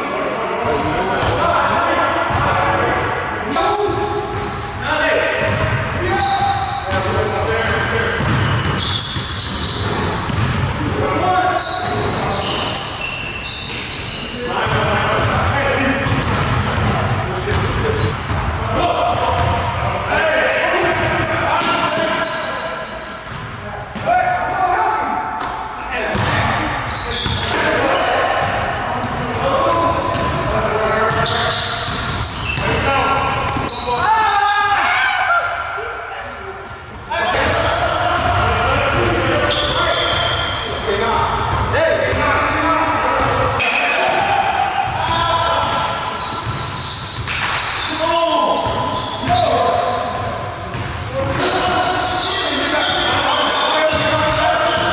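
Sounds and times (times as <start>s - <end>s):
players' voices in large hall: 0.0s - 54.9s
basketball bouncing on wooden floor: 7.8s - 10.7s.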